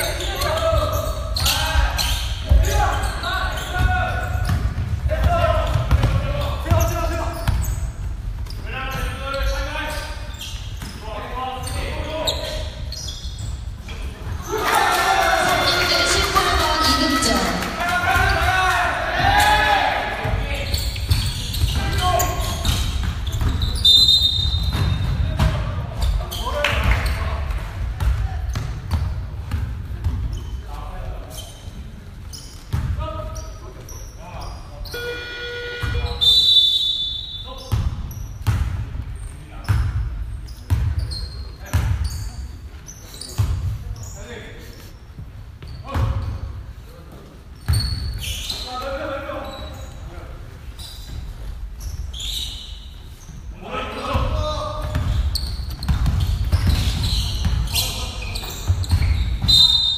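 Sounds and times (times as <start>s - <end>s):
shoe squeaks: 0.0s - 4.8s, 5.7s - 14.6s, 20.5s - 27.3s, 30.3s - 38.5s, 39.2s - 46.6s, 47.6s - 53.5s, 54.3s - 59.9s
players' voices: 0.0s - 38.0s, 53.4s - 59.9s
basketball bouncing on gym floor: 3.6s - 9.1s, 20.2s - 30.4s, 37.7s - 40.1s, 40.7s - 41.1s, 41.7s - 42.1s, 54.1s - 59.7s.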